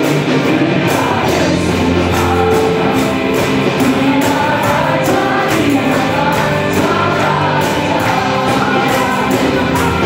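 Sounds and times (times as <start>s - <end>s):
band with electric guitar and keyboard: 0.0s - 10.0s
group of singers: 0.0s - 10.0s.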